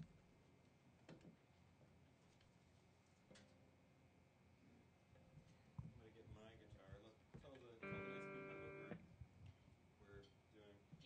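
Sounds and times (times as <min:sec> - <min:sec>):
quiet talking: 0:05.9 - 0:09.0
guitar chord strummed: 0:07.8 - 0:09.0.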